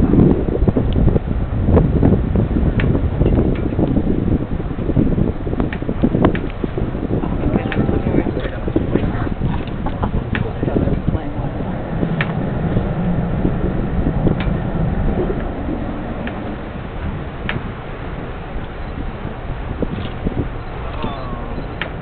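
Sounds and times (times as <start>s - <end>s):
boat engine rumbling: 0.0s - 22.0s
wind buffeting microphone: 0.0s - 22.0s.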